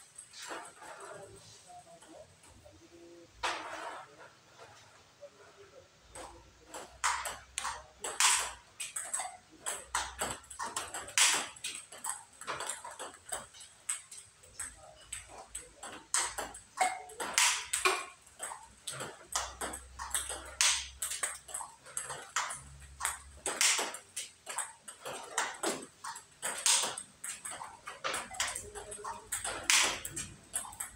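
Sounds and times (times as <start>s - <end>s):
table tennis ball clicks: 6.2s - 30.9s.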